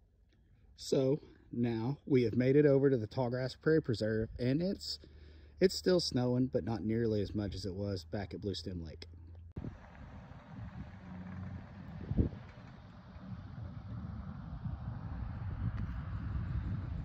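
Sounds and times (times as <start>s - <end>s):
wind buffeting microphone: 9.6s - 17.0s.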